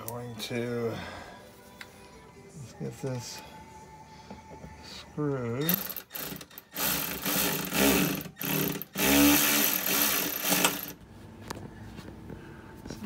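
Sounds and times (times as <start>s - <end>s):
power driver motor whirring: 5.7s - 10.9s.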